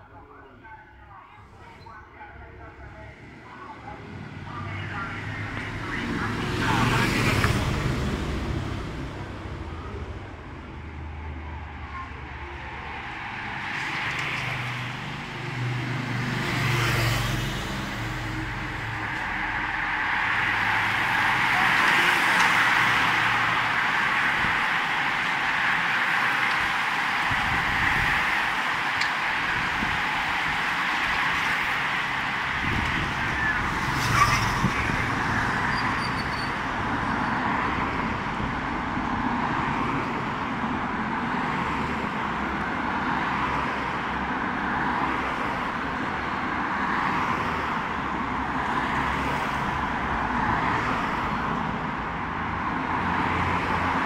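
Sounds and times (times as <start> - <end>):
motorbikes passing: 3.1 - 40.2
car engine approaching: 4.1 - 36.1
bicycle tyres and drivetrains hissing: 17.0 - 34.8.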